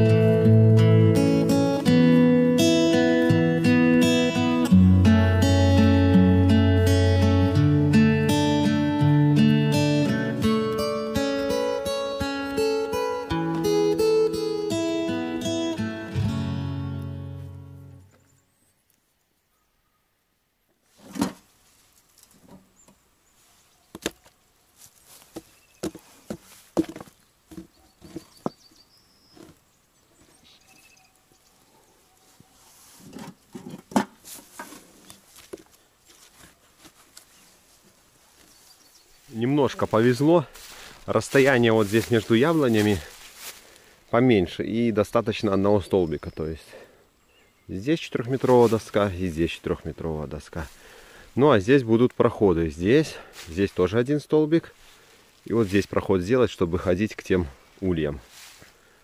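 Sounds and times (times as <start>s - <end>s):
acoustic guitar music: 0.0s - 18.3s.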